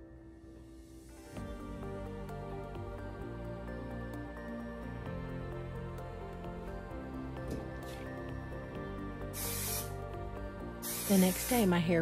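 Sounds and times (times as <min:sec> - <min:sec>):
soft background music: 0:00.0 - 0:12.0
aerosol spray hiss: 0:09.3 - 0:10.0, 0:10.8 - 0:11.9.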